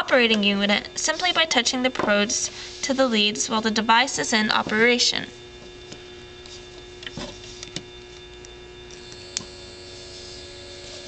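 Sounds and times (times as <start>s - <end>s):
small motor whining: 8.9s - 11.0s.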